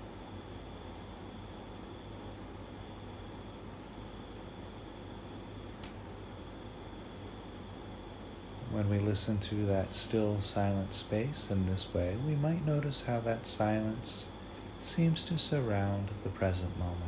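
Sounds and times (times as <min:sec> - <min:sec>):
faint high-pitched whines: 0:00.0 - 0:17.0
recording hiss: 0:00.0 - 0:17.0.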